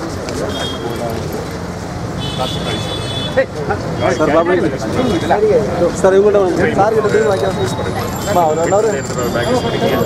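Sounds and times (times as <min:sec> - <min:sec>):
crowd chatter: 0:00.0 - 0:10.0
traffic noise: 0:00.0 - 0:10.0.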